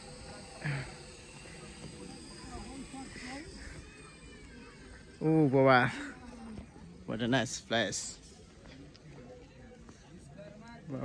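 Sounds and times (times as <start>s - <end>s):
distant people talking: 0.0s - 11.0s
low outdoor background: 0.0s - 11.0s.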